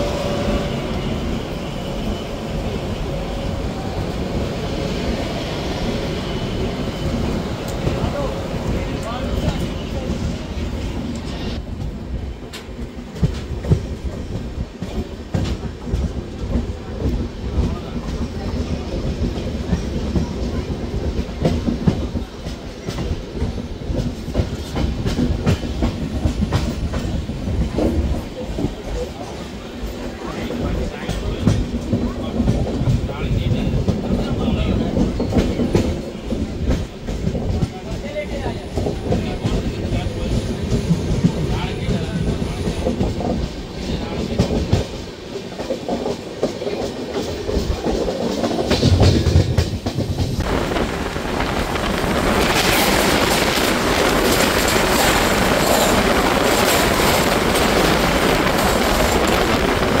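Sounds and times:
passing train rushing: 0:00.0 - 1:00.0
steady train rumble: 0:00.0 - 1:00.0
train wheels clicking over rail joints: 0:07.0 - 1:00.0.

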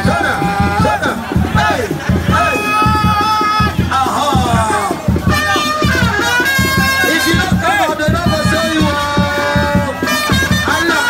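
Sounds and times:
crowd shouting: 0:00.0 - 0:11.0
dance music with drum beats: 0:00.0 - 0:11.0.

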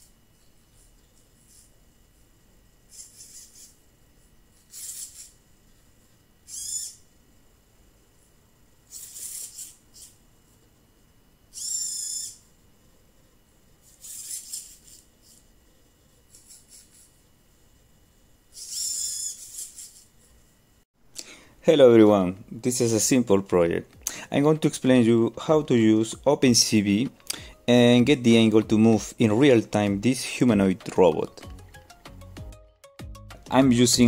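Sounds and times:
faint steady high hum: 0:00.0 - 0:32.4.

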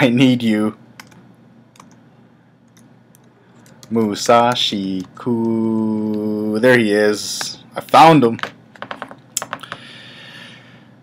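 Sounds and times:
computer keys clicking: 0:01.0 - 0:02.0, 0:02.7 - 0:06.3.

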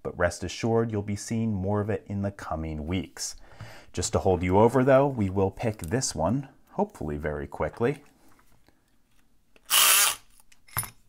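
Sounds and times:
electric lock pick gun buzzing: 0:09.7 - 0:10.3.

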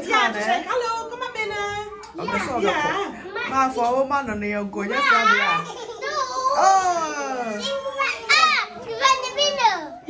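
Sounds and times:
young child speaking: 0:07.6 - 0:10.0.

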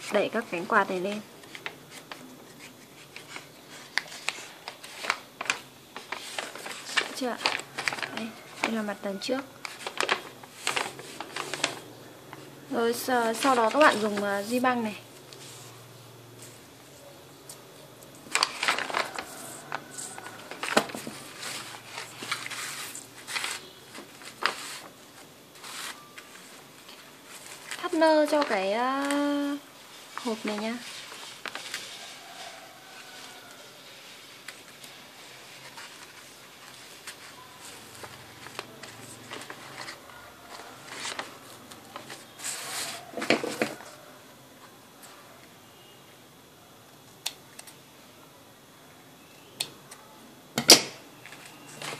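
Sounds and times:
paper gift bag rustling: 0:00.0 - 0:15.8, 0:18.2 - 0:44.1.

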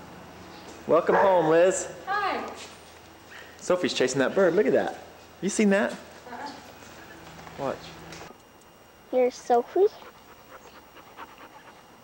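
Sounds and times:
dog panting: 0:09.5 - 0:12.0.

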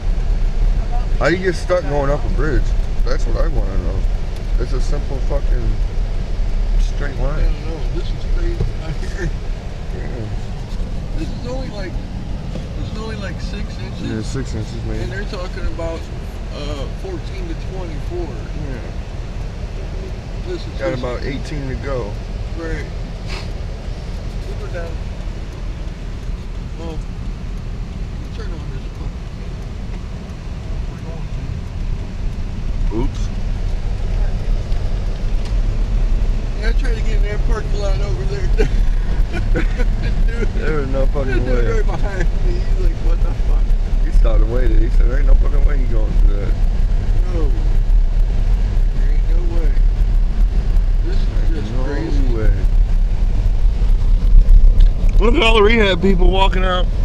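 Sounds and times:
tyres on snowy road: 0:00.0 - 0:57.0
vehicle engine rumble: 0:00.0 - 0:57.0
faint voices: 0:06.7 - 0:19.1, 0:36.5 - 0:56.9.

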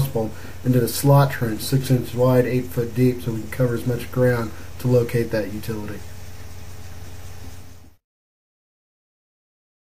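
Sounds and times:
even hiss: 0:00.0 - 0:08.0.

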